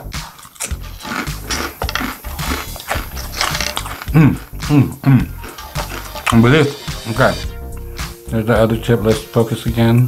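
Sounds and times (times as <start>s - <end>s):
crunchy snack chewing: 0.0s - 7.4s.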